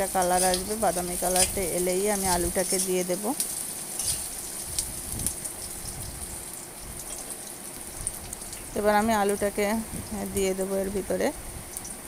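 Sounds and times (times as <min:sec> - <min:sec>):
garlic sizzling in hot oil: 0:00.0 - 0:12.0.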